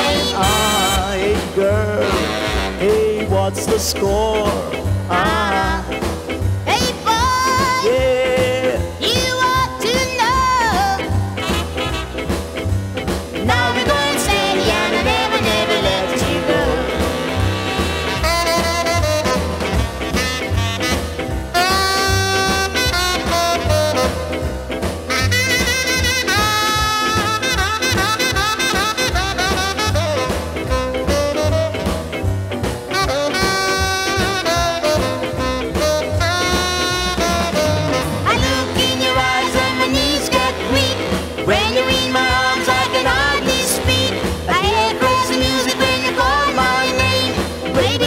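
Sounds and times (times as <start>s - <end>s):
ska music with horns: 0.0s - 48.0s.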